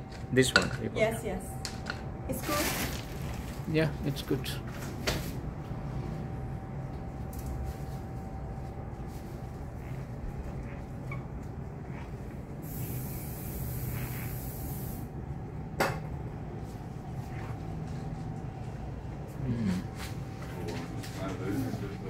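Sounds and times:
room hum: 0.0s - 22.0s
spray hissing: 12.6s - 15.1s.

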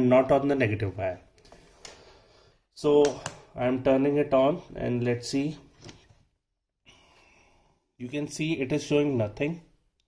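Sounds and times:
faint breath: 1.6s - 2.7s, 6.8s - 7.9s.

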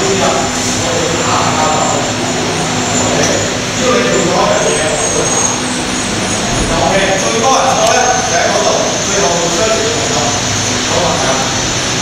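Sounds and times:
electric fans whirring: 0.0s - 12.0s.

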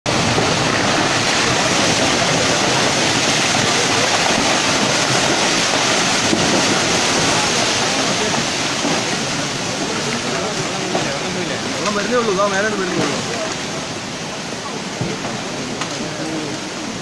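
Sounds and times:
mud and water rushing roar: 0.0s - 17.0s.

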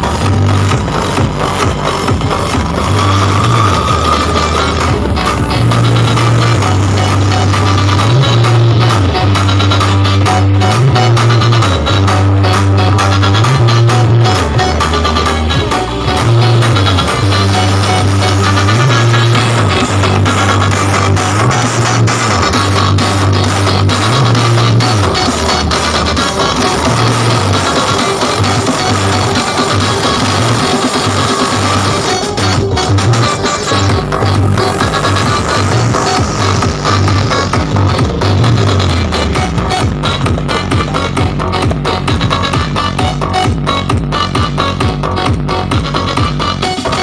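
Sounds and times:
loud music with heavy bass line: 0.0s - 47.0s.

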